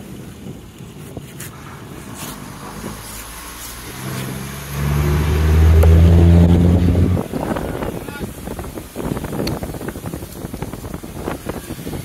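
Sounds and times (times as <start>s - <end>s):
vehicle engine running: 1.6s - 7.4s.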